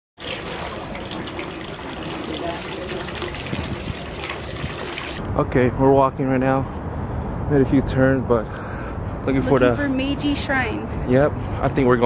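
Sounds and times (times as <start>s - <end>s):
water poured over hands: 0.2s - 5.2s
water pouring into stone basin: 0.2s - 5.2s.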